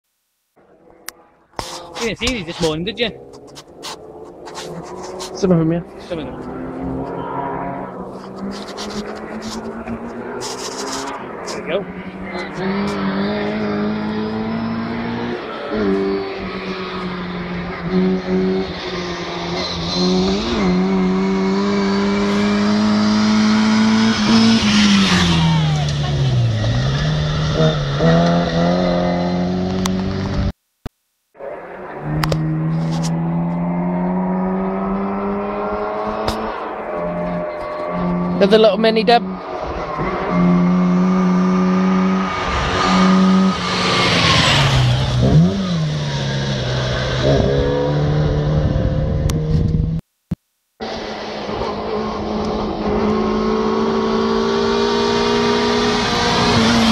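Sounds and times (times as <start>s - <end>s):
rally car engine at high revs: 0.8s - 30.6s, 31.4s - 50.0s, 50.8s - 56.9s.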